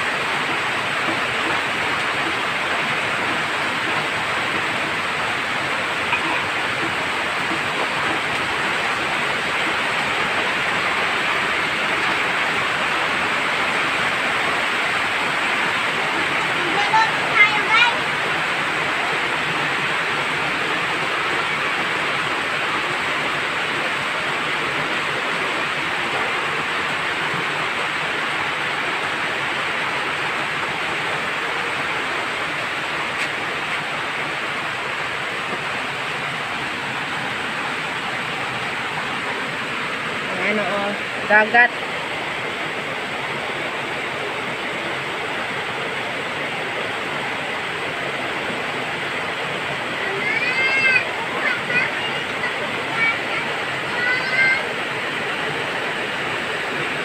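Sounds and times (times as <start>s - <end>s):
heavy rain pouring: 0.0s - 57.0s.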